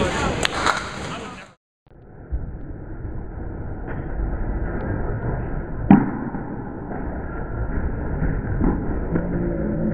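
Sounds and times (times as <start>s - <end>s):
bowling alley rumble: 2.1s - 9.9s.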